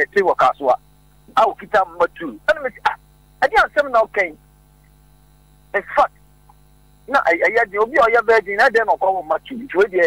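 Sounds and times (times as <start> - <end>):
person speaking: 0.0 - 4.4, 5.7 - 6.2, 7.0 - 10.0
electrical mains hum: 0.0 - 10.0.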